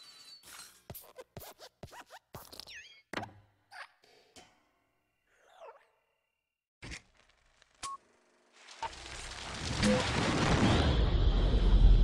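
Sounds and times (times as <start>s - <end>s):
cartoon springy squeaks: 2.4s - 4.0s.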